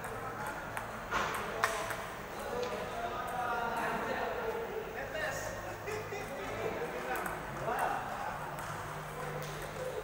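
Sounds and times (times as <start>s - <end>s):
crowd chatter in a hall: 0.0s - 10.0s.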